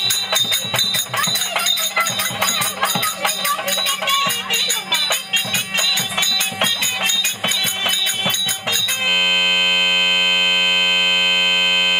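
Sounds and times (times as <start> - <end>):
folk music with tambourine: 0.0 - 9.3
steady buzzing tone: 0.0 - 11.9.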